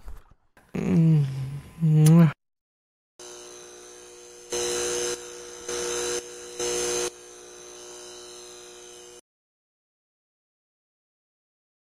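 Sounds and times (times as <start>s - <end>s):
buzzing surges: 3.2s - 9.2s
neon sign electrical buzz: 3.2s - 9.2s.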